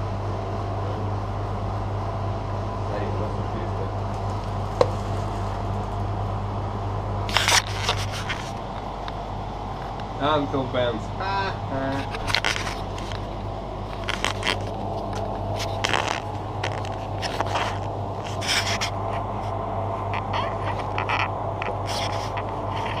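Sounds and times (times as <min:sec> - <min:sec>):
low electrical hum: 0:00.0 - 0:23.0.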